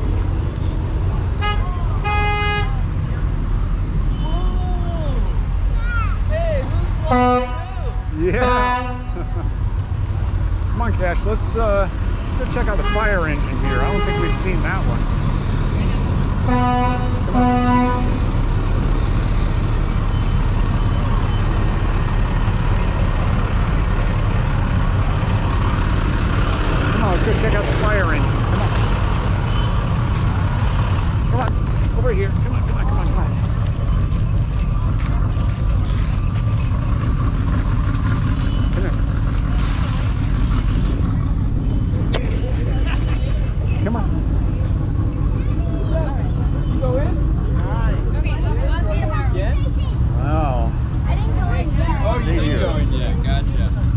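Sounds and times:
vehicle horn toots: 1.3s - 2.8s, 7.0s - 9.4s, 12.6s - 14.8s, 16.4s - 18.2s
low rumble: 6.7s - 52.1s
faint voices: 38.1s - 53.9s.

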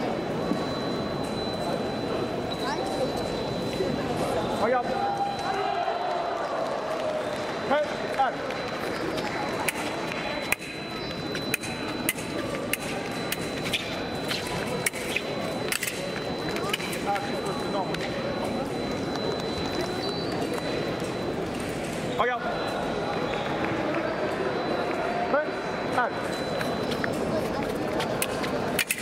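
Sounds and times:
hum of voices in a hall: 0.0s - 29.0s.

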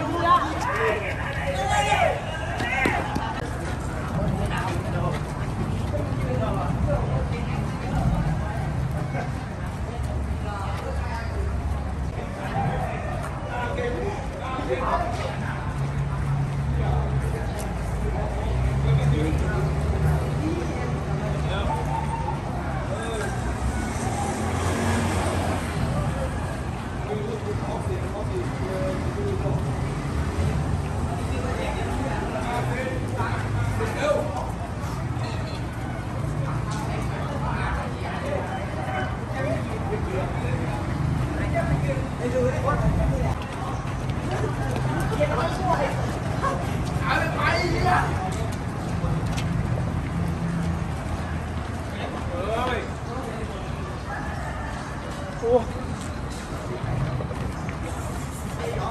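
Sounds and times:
people calling out: 0.0s - 3.4s
faint voices: 0.0s - 58.9s
traffic hum: 0.0s - 58.9s.

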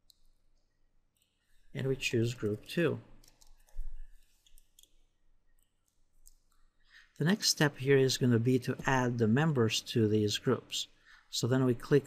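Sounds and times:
keyboard and mouse clicks: 2.3s - 5.0s.

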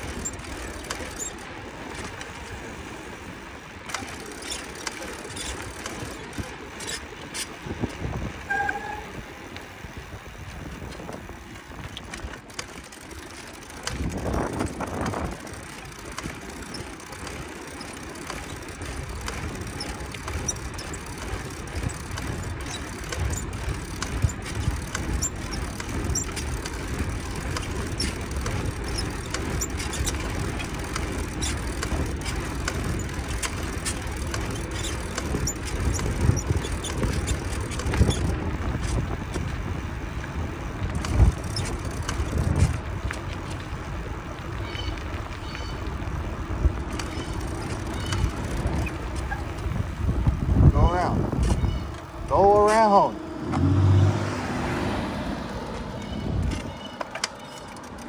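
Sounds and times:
bicycle tyre noise: 0.0s - 58.0s
wind rumble on microphone: 5.4s - 13.0s, 13.7s - 56.9s.

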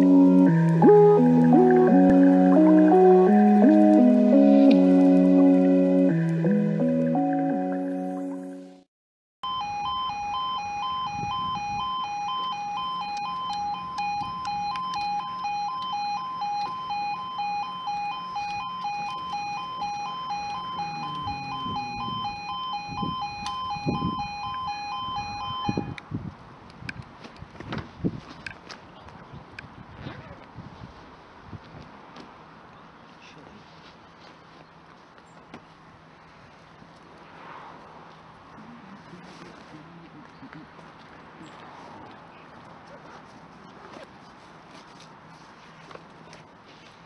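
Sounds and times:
two-tone warning alarm: 0.0s - 7.8s, 9.4s - 26.0s
intro music: 0.0s - 24.8s.

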